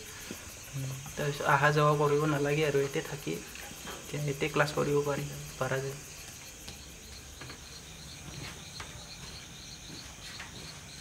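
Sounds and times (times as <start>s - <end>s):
night insects chirping: 0.0s - 11.0s.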